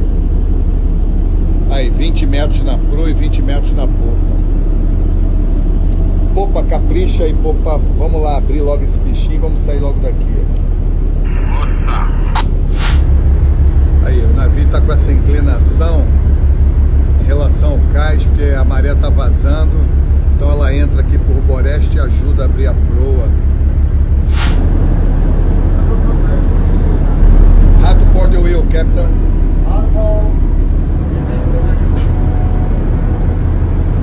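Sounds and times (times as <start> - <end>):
tug diesel engines rumbling: 0.0 - 34.0
brief hiss: 12.7 - 13.1, 24.2 - 24.6.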